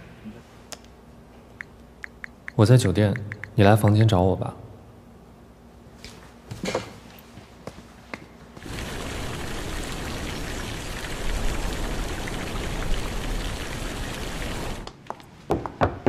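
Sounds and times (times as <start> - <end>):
fountain water splashing: 8.6 - 14.9.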